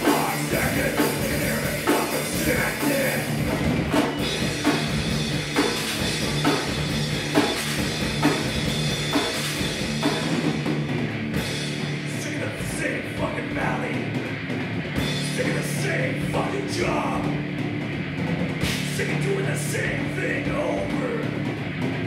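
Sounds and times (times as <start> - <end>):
heavy drum hits: 0.0 - 12.1
heavy metal band playing: 0.0 - 22.0.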